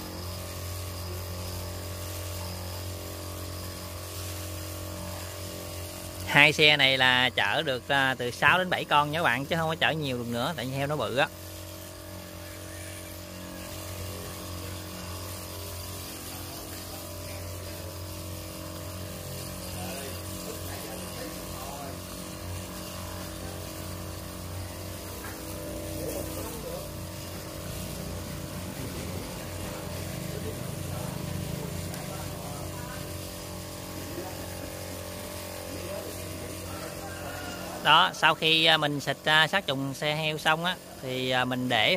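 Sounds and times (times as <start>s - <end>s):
spray hissing from wand: 0.0s - 41.9s
sprayer pump motor hum: 0.0s - 41.9s.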